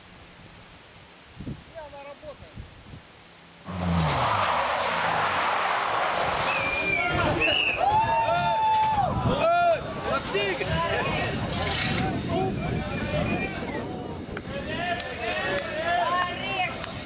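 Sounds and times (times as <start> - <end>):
car engine: 3.6 - 7.5
tyre noise on wet tarmac: 3.6 - 7.8.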